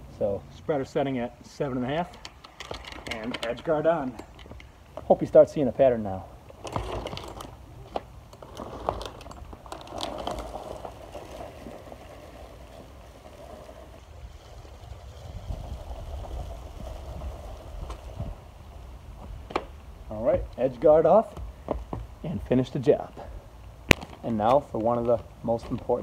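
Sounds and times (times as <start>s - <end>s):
spreader wheels and spinner rattling: 1.5s - 5.4s
steady low rumble: 9.1s - 25.4s.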